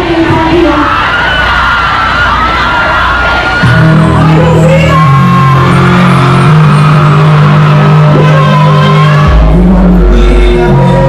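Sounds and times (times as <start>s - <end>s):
dancehall music over loudspeakers: 0.0s - 11.0s
low steady bass note: 3.6s - 11.0s.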